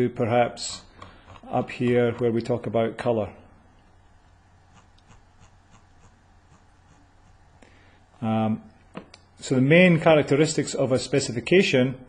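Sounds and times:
low steady hum: 0.0 - 12.0
mouse scroll wheel clicking: 1.0 - 2.3, 4.7 - 7.4.

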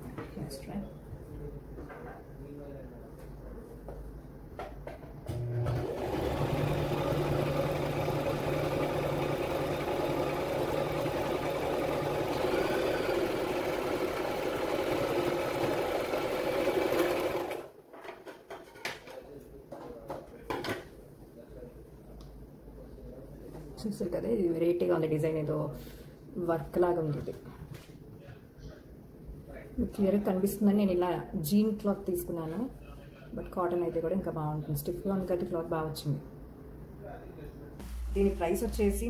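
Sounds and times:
sewing machine running: 5.4 - 17.7.

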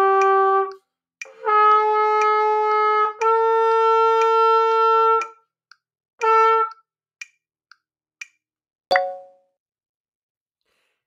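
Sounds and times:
metronome clicking: 4.1 - 9.3.

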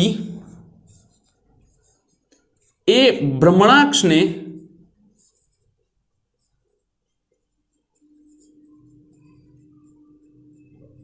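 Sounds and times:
man speaking: 0.0 - 0.4, 2.9 - 4.7
marker scratching on whiteboard: 0.0 - 3.0, 5.1 - 11.0.

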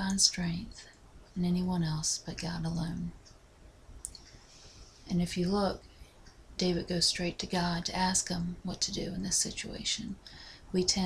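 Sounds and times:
faint hiss: 0.0 - 11.0.

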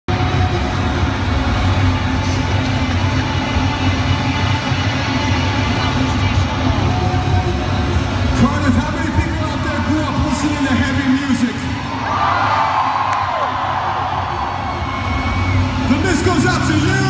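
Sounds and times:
crowd noise: 0.1 - 17.0
rock music from loudspeakers: 0.1 - 17.0.

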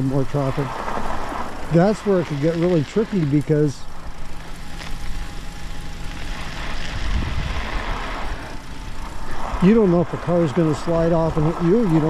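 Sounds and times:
tyres rolling on ice: 0.0 - 3.8, 9.0 - 12.0
faint electric motor whine: 0.0 - 12.0
wind on microphone: 7.0 - 7.8.

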